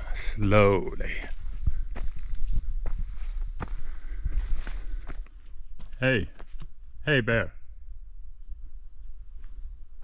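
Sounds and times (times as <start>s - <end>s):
footsteps on dirt trail: 1.0s - 6.8s, 9.3s - 10.0s.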